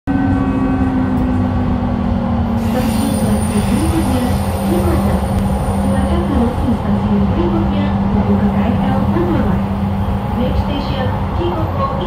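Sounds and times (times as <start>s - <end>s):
constant train hum: 0.1s - 12.0s
train rumble: 0.1s - 12.0s.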